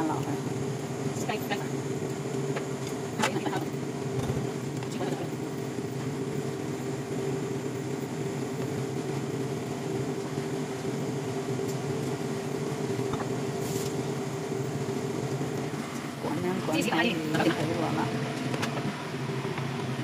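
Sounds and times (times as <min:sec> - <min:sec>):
cooktop cooling fan hum: 0:00.0 - 0:20.0.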